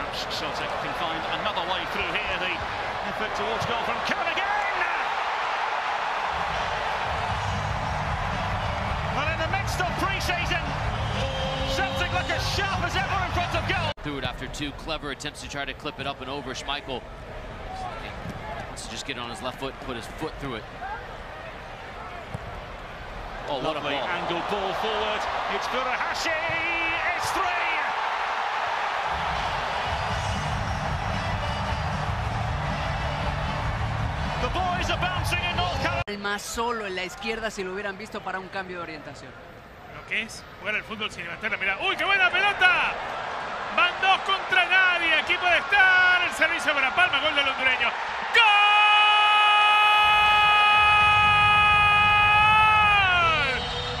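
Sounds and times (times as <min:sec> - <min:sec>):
stadium crowd cheering: 0:00.0 - 0:14.0, 0:17.6 - 0:36.1, 0:40.0 - 0:54.0.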